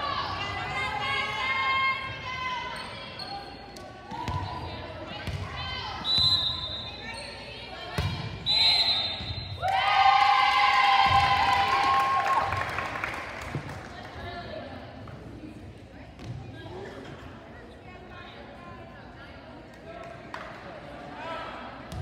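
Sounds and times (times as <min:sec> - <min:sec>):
shrill whistle blasts: 0:06.0 - 0:07.1, 0:08.4 - 0:09.6.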